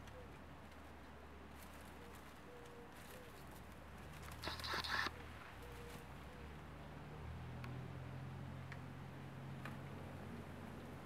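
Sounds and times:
rustle of garden plants: 0.0 - 6.3.

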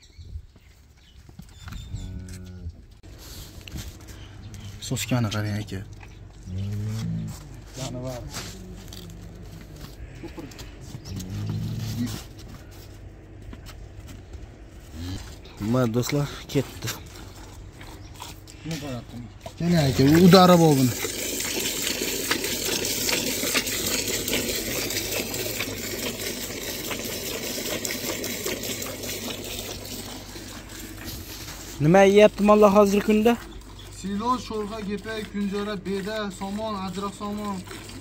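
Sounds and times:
cow mooing: 6.4 - 7.5, 8.4 - 12.3
milk squirting into bucket: 19.7 - 31.8.

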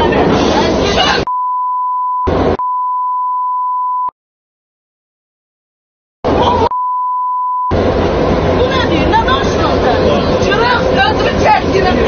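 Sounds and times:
censor bleep: 1.3 - 4.1, 6.6 - 7.7.

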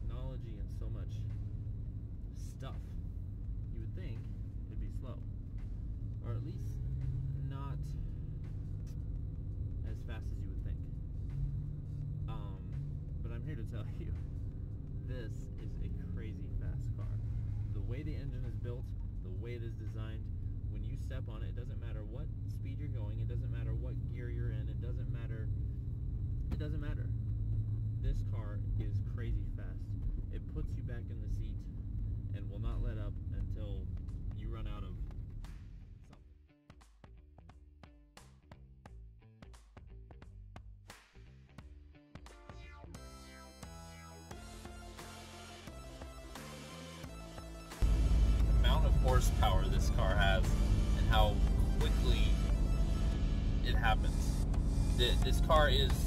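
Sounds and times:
road noise inside car: 0.0 - 35.6, 47.8 - 56.0
car engine drone: 0.0 - 36.2, 42.9 - 56.0.

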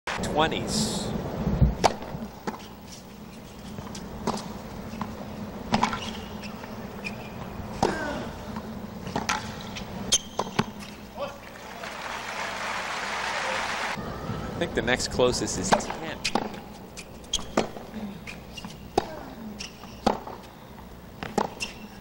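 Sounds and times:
racquets striking tennis ball: 1.8 - 2.8, 3.6 - 11.1, 15.6 - 17.9, 18.6 - 20.5, 21.2 - 21.8
crowd applause: 11.4 - 14.0.

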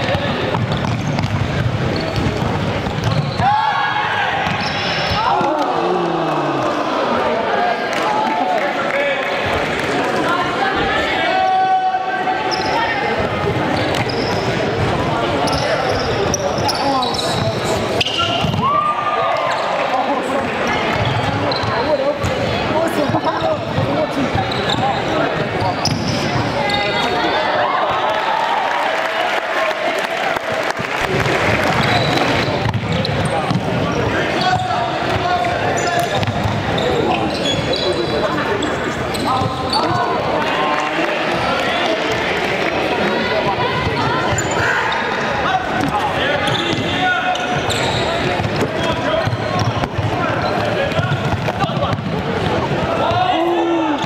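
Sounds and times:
people shouting and chatter: 0.0 - 54.0
sneaker squeaks: 0.1 - 3.6, 4.4 - 5.2, 12.4 - 18.7, 20.8 - 22.4, 23.0 - 27.3, 31.7 - 40.2, 43.9 - 52.2.

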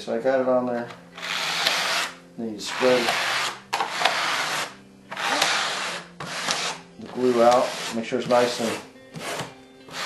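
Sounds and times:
plastic spreader scraping fiberglass: 2.8 - 10.0.

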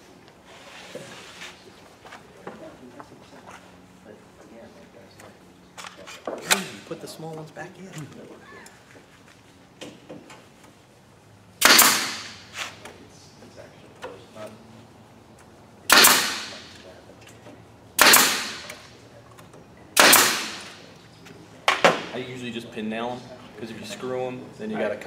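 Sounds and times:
pin nailer firing: 11.6 - 12.6, 15.9 - 16.8, 18.0 - 18.8, 20.0 - 20.8.

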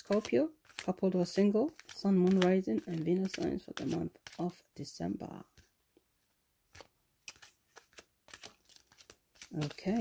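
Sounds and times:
cards shuffling: 0.0 - 4.6, 6.7 - 10.0.

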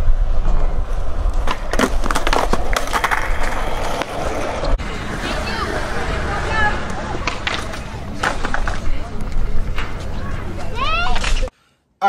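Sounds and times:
skateboard wheels rolling on concrete: 0.0 - 11.5
skateboard clacking: 1.4 - 11.5.

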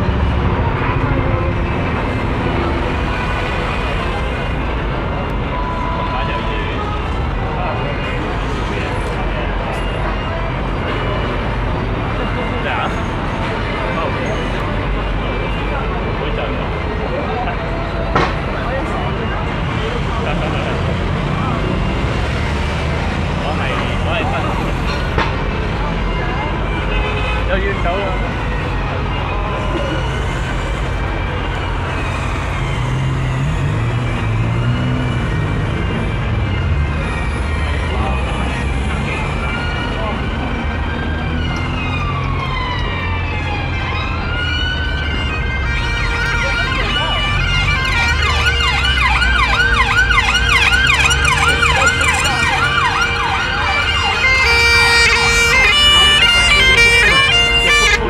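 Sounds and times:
emergency siren wailing and yelping: 0.0 - 58.0
low traffic rumble: 0.0 - 58.0.

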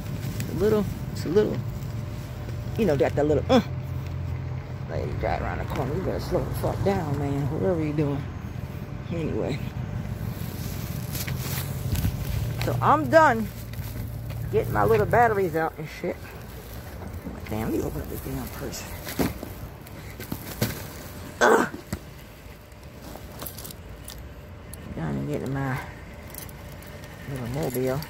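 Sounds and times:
low outdoor rumble: 0.0 - 28.0
purse rustling: 9.8 - 21.4, 22.0 - 24.6
wind rumble on microphone: 10.4 - 12.8.

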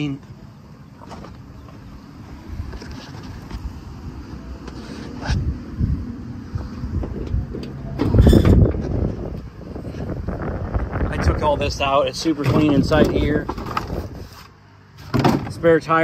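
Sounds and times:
microphone handling rumble: 5.0 - 14.3
car hood clattering open: 7.0 - 9.0, 15.0 - 15.6.

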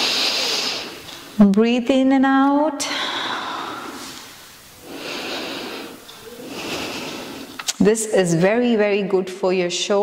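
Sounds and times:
woman breathing slowly: 2.8 - 7.7.

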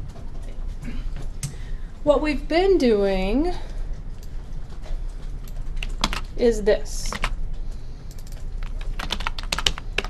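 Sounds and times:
keyboard typing clicks: 5.4 - 6.4, 7.0 - 7.4, 8.1 - 10.0.

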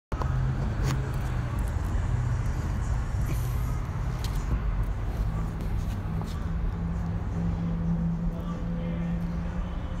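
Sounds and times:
engine humming: 0.1 - 10.0.

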